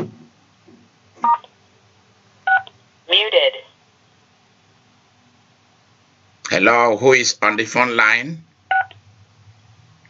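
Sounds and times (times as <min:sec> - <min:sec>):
knock: 0:00.0 - 0:00.3.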